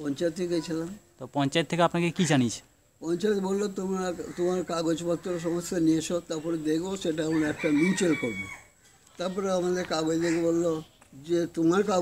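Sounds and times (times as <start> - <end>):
rooster crowing: 7.1 - 8.8.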